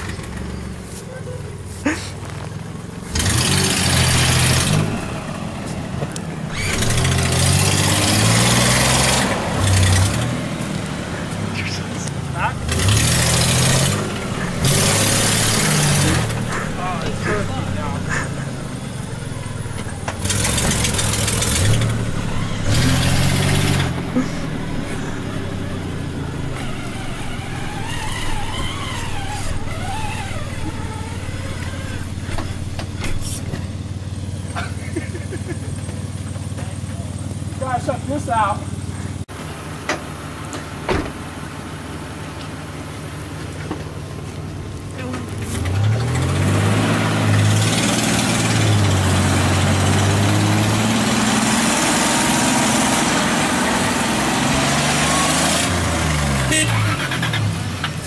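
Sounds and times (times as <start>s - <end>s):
engine revving and idling: 0.0s - 58.0s
tyres spinning in mud: 1.8s - 33.9s.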